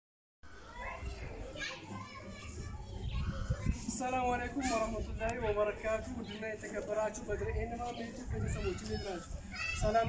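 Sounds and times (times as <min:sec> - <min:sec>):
children playing: 0:00.4 - 0:10.0.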